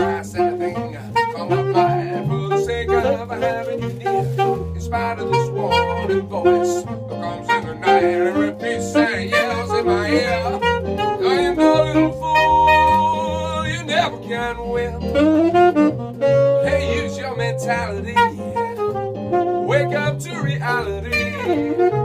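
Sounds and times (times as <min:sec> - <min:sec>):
electric keyboard chords: 0:00.0 - 0:22.0
saxophone melody: 0:00.0 - 0:22.0
stepping bass line: 0:08.6 - 0:18.8.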